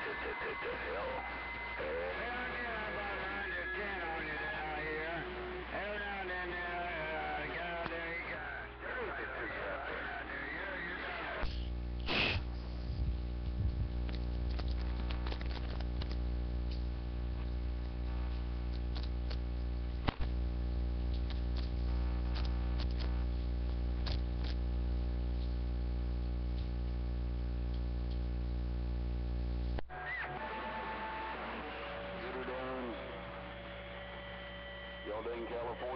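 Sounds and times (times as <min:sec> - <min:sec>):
garbled voice over radio: 0:00.0 - 0:11.5, 0:35.0 - 0:35.9
radio static burst: 0:00.0 - 0:12.8, 0:14.0 - 0:26.1, 0:28.6 - 0:35.9
buzzy electrical hum: 0:00.0 - 0:29.8.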